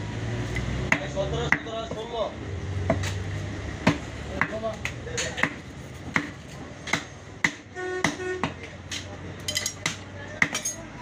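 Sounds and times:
knife chopping meat on wood block: 0.9 - 2.1, 3.8 - 9.1.

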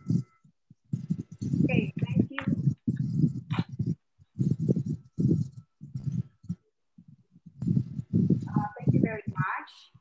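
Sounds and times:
indistinct talking: 1.4 - 5.1.

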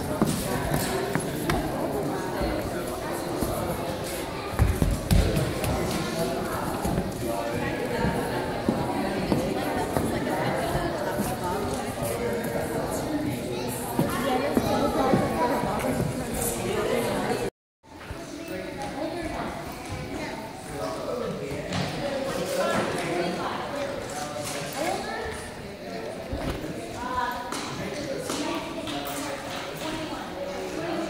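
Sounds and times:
indistinct chatter of crowd: 0.0 - 31.0
people talking in a large room: 0.0 - 31.0.

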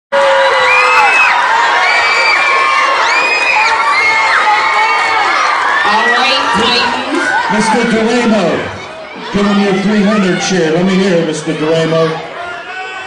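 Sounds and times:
crowd cheering and screaming: 0.1 - 13.0.

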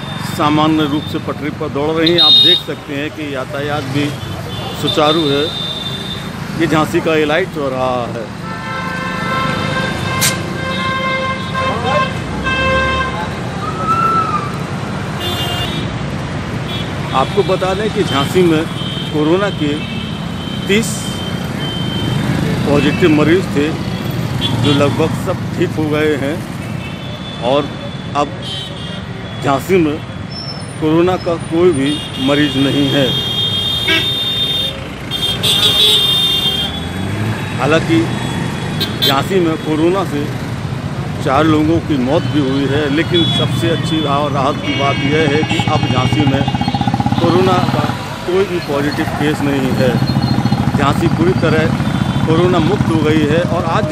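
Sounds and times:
scooters motorcycles and cars passing: 0.0 - 53.9
vehicle horn held steady: 2.0 - 2.7, 8.5 - 11.7, 32.0 - 36.8
short high vehicle horn: 2.1 - 2.7, 8.5 - 13.1, 33.0 - 36.9.

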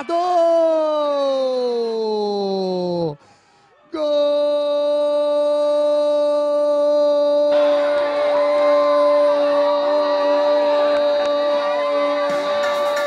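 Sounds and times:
excited shouting voices: 3.9 - 13.0.

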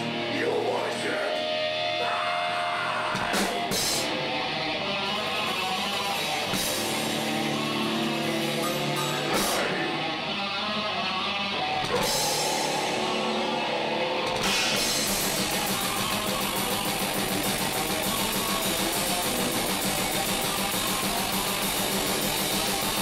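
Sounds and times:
heavy metal band playing live: 0.0 - 23.0.

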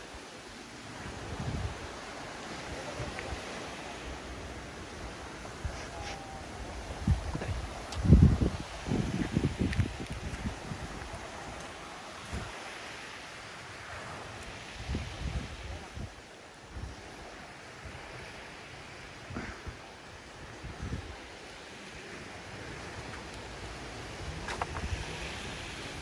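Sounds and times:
breeze hiss: 0.0 - 26.0
light surf: 0.0 - 26.0
wind buffeting microphone: 0.9 - 3.6, 4.4 - 12.6, 14.6 - 18.3, 19.2 - 21.4.

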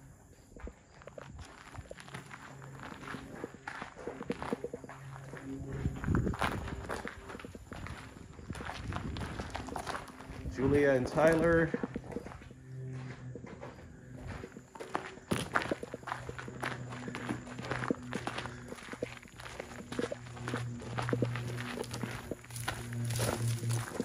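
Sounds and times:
faint low hum: 0.0 - 24.0
footsteps on rough ground: 0.0 - 24.0.

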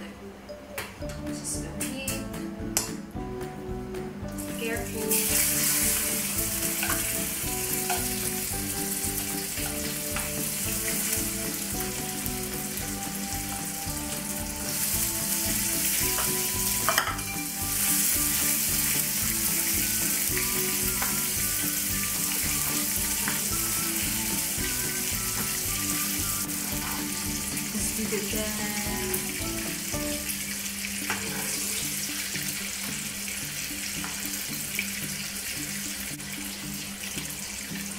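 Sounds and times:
quiet background music: 0.0 - 37.9
caramel sizzling in a frying pan: 4.3 - 37.9
spoon stirring: 5.7 - 8.3.

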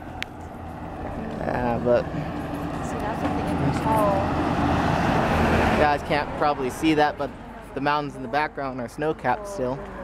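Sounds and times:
pickup truck driving past: 0.0 - 7.8.

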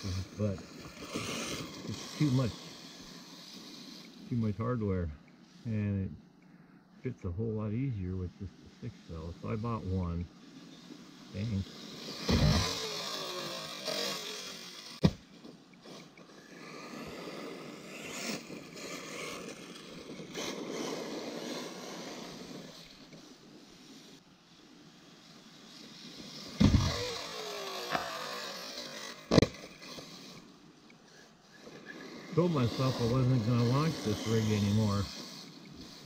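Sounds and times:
tyres scrabbling on gravel: 0.0 - 4.4, 31.5 - 36.0
electric motor whine: 0.0 - 5.8, 7.6 - 36.0
sharp knocks from landings: 12.1 - 15.6, 26.6 - 29.9.

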